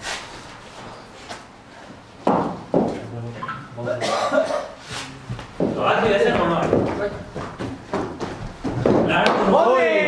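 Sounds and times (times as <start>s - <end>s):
people talking: 3.0s - 7.4s, 9.0s - 10.0s.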